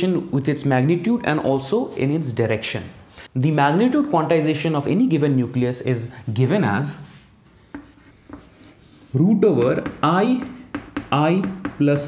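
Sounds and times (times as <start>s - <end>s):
chalk scratching on chalkboard: 7.7s - 12.0s
chalk tapping on chalkboard: 7.7s - 12.0s.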